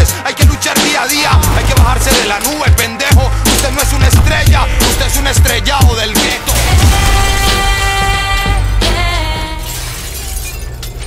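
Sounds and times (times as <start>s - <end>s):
objects crashing and breaking: 1.2s - 11.0s.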